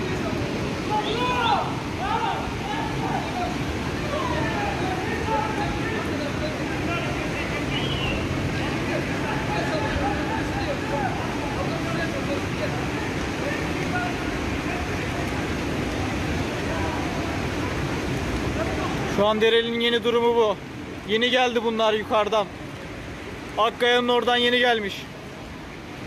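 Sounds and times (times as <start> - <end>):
distant voices talking: 0.0 - 19.2
floodwater rushing: 0.0 - 26.0.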